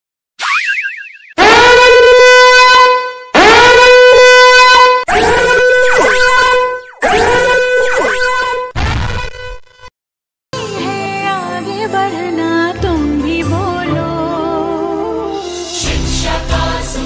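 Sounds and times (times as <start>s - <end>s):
warbling rising whistle: 0.4s - 1.4s
horn blasts: 1.4s - 9.9s.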